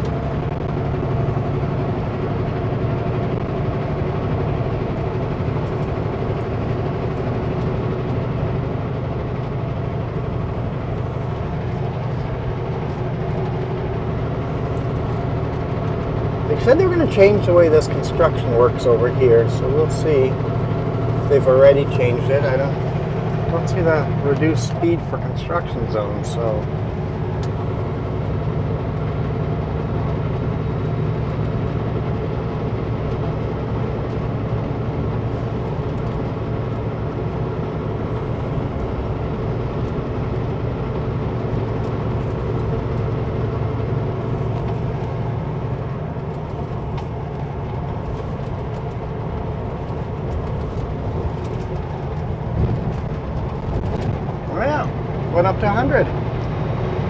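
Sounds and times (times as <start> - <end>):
diesel truck engine drone: 0.0 - 57.0
road noise: 0.0 - 57.0.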